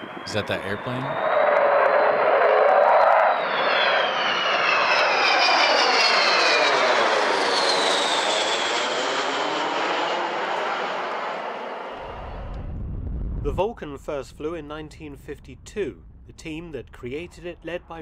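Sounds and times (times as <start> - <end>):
jet aircraft flying past: 0.0 - 18.0.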